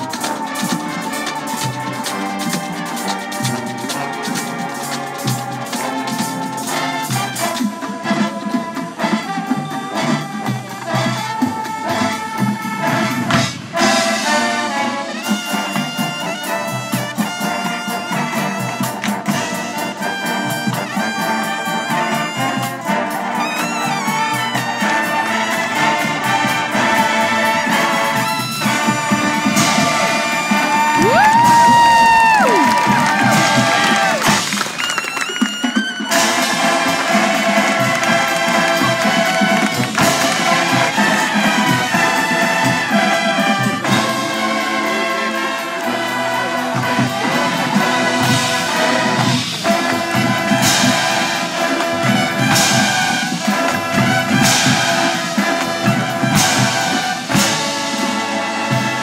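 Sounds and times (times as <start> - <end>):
brass horn chords: 0.0 - 59.0.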